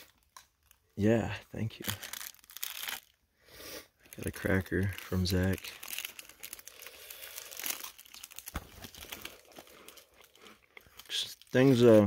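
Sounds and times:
cracker crunching: 1.7 - 3.2, 4.0 - 12.0.

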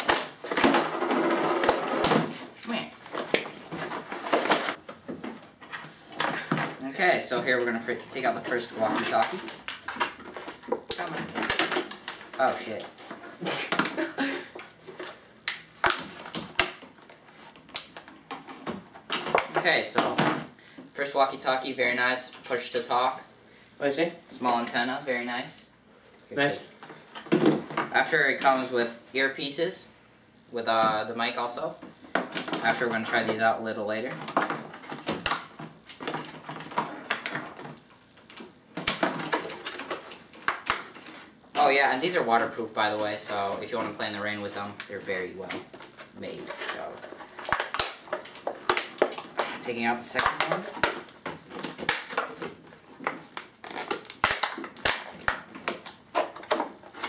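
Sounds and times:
plastic packaging crinkling: 44.4 - 57.0.

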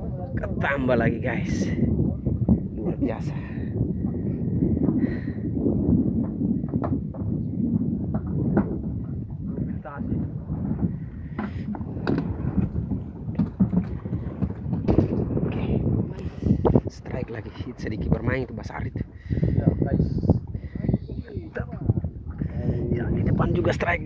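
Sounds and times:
wind rumbling on microphone: 0.0 - 24.0
knocks and thuds in wooden boat: 5.7 - 16.8.

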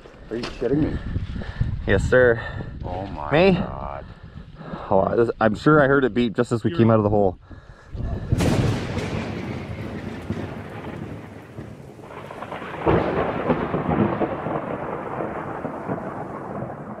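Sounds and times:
rolling thunder: 8.1 - 17.0
loud crack of thunder: 8.3 - 17.0
rain hissing: 8.3 - 17.0.

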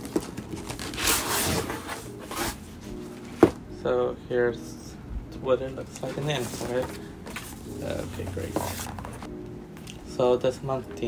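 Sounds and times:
cardboard box rustling and scraping: 0.0 - 3.6, 6.0 - 9.3.

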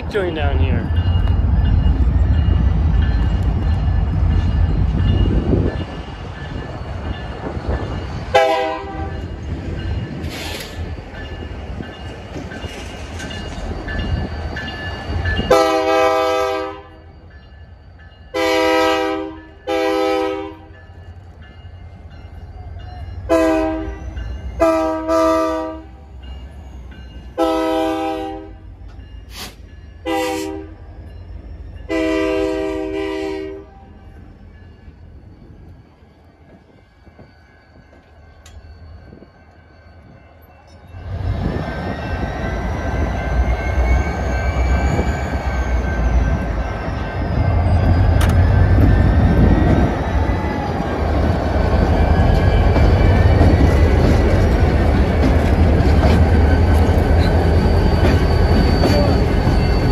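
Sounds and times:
locomotive air horn blasts: 8.3 - 9.1, 15.5 - 16.9, 18.4 - 20.7, 23.3 - 24.0, 24.6 - 25.9, 27.4 - 28.6, 29.3 - 30.8, 31.9 - 33.8.

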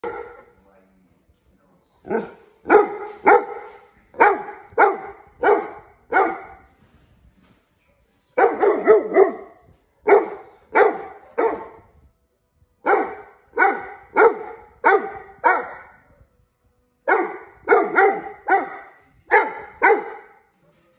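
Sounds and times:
dog barking: 0.0 - 0.5, 2.0 - 6.7, 8.4 - 11.8, 12.8 - 16.2, 17.1 - 20.4.

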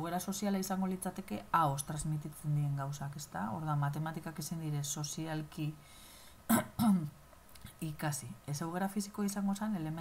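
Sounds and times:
woman clearing her throat: 6.5 - 7.2.

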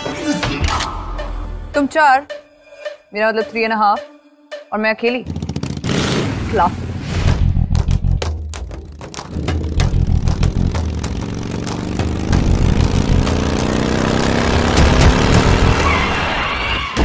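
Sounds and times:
motorcycle engine revving: 5.2 - 16.4.

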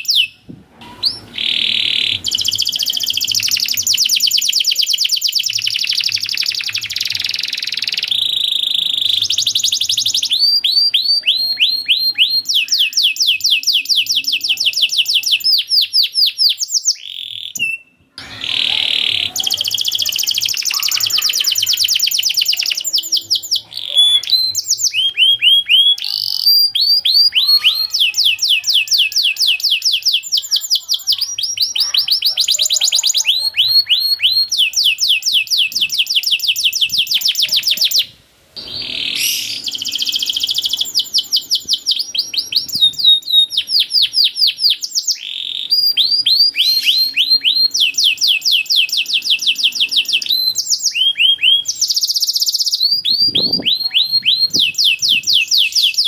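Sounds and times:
canary singing: 0.0 - 56.0.

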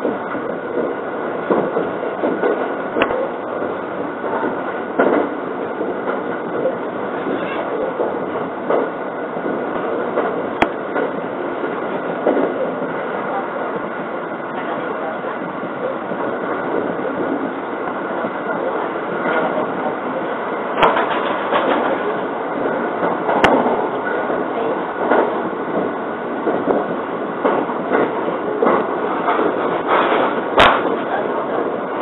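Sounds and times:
train wheels rumbling on rail: 0.0 - 32.0.

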